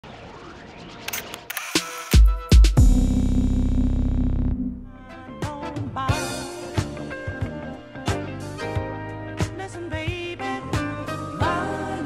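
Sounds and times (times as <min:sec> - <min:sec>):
camera shutter clicks: 0:01.1 - 0:02.2.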